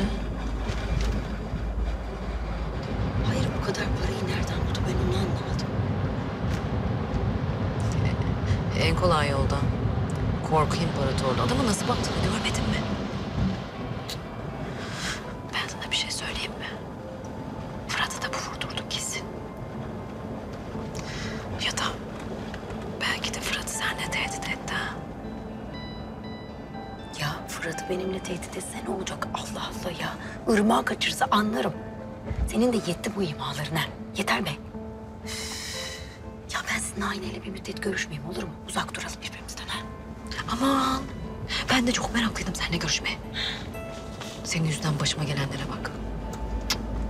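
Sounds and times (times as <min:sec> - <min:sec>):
low road rumble in car: 0:00.0 - 0:30.5.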